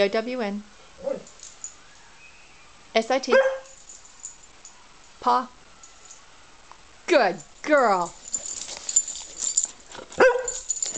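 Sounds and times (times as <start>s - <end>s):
light clicks and rustles: 7.4s - 10.9s.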